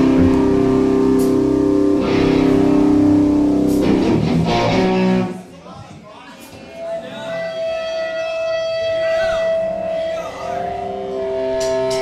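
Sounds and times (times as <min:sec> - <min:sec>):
rock band playing: 0:00.0 - 0:05.4.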